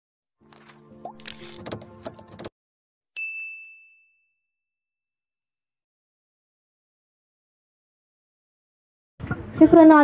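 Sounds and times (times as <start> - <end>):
bright electronic ding: 3.2 - 4.7.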